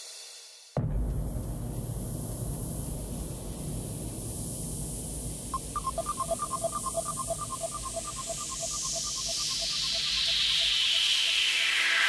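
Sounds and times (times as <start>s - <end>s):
low rumble: 0.8s - 8.6s
soft synth noise wash: 1.7s - 12.0s.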